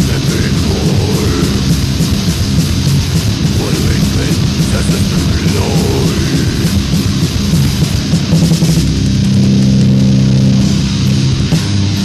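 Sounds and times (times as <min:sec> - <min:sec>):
distorted electric guitars: 0:00.0 - 0:12.0
drums and cymbals: 0:00.0 - 0:12.0.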